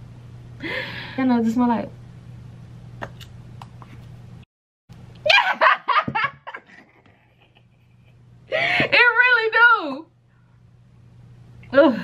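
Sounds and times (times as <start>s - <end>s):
woman laughing: 5.3s - 8.8s.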